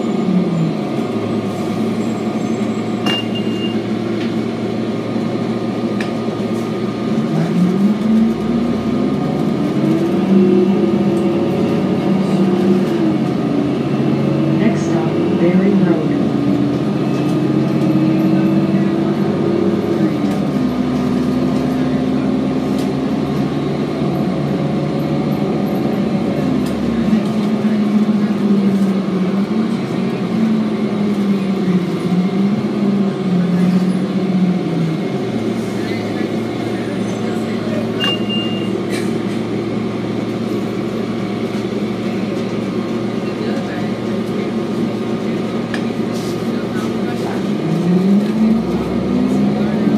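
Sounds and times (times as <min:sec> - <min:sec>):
bus diesel engine drone: 0:00.0 - 0:49.9
short beep: 0:03.0 - 0:03.8, 0:38.0 - 0:38.8.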